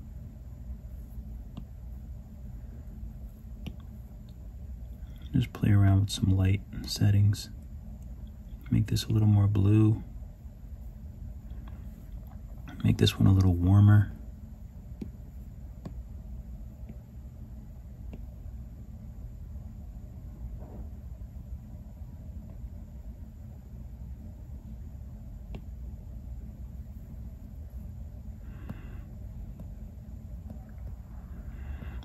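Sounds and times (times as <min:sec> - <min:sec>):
low room hum: 0:00.0 - 0:32.0
stylus tapping on screen: 0:01.5 - 0:01.8, 0:03.6 - 0:04.4, 0:14.9 - 0:16.1, 0:16.8 - 0:17.1, 0:18.0 - 0:18.3, 0:25.4 - 0:25.8, 0:28.6 - 0:31.0.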